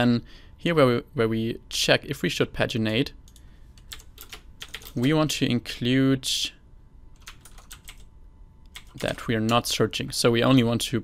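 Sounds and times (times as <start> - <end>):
computer keyboard typing: 3.3 - 5.2, 7.2 - 8.1, 8.7 - 9.7.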